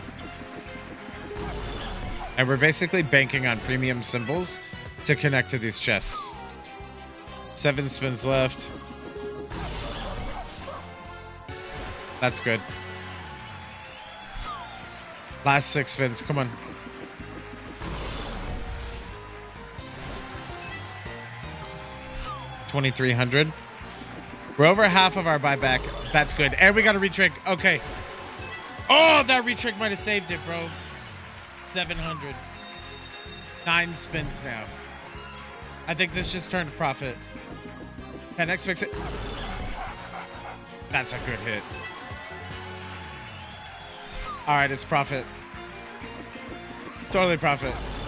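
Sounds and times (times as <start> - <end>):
big-win jingle: 0.0 - 48.0
slot machine background music: 0.0 - 48.0.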